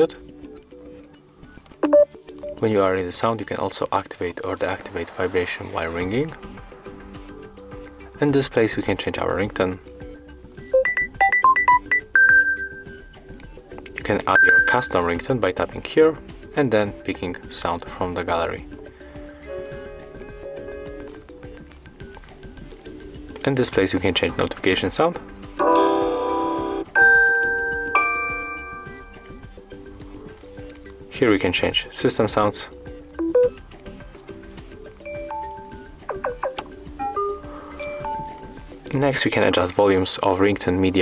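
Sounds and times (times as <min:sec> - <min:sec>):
bell-like synth ringtone melody: 0:01.8 - 0:02.6, 0:10.7 - 0:13.1, 0:14.4 - 0:15.0, 0:25.6 - 0:29.4, 0:33.2 - 0:33.6, 0:35.1 - 0:38.5
phone notification chimes: 0:01.8 - 0:02.6, 0:10.8 - 0:13.0, 0:14.4 - 0:14.9, 0:25.6 - 0:29.4, 0:33.2 - 0:33.6, 0:35.1 - 0:38.5.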